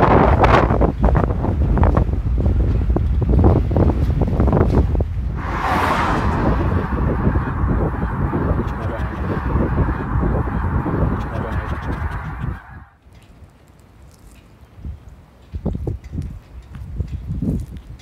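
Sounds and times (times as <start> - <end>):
wind buffeting microphone: 0.0 - 12.9, 14.8 - 18.0.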